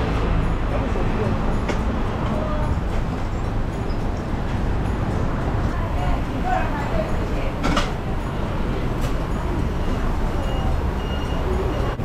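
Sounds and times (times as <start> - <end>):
street traffic rumble: 0.0 - 12.0
faint voices: 0.1 - 12.0.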